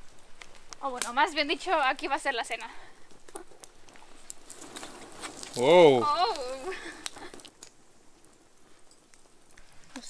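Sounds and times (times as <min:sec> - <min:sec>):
wood fire crackling: 0:00.0 - 0:10.0.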